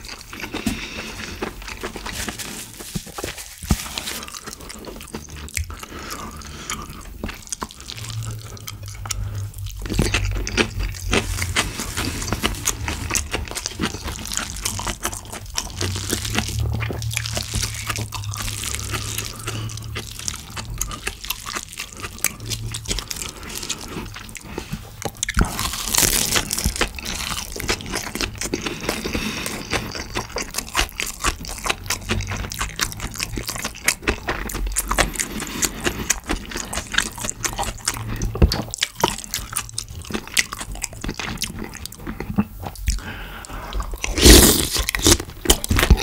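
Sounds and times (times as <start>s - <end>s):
close chewing with wet crunches: 0.0s - 46.0s.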